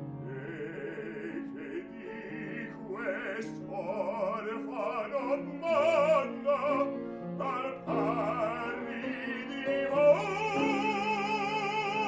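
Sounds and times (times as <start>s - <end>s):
piano chords: 0.0s - 12.0s
man singing high note with vibrato: 0.2s - 12.0s.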